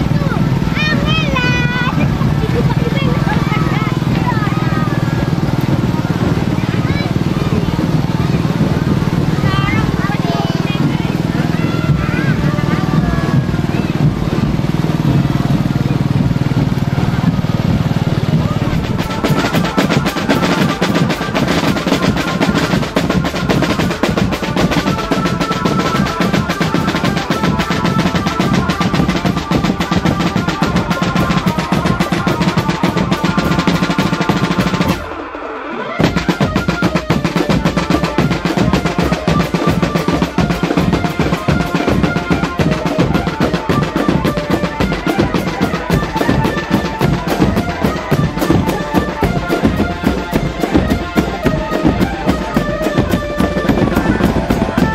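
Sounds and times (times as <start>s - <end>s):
low steady rumble: 0.0s - 19.8s
marching drum band: 0.0s - 54.9s
melody over drumbeat: 0.0s - 54.9s
voices: 0.0s - 54.9s.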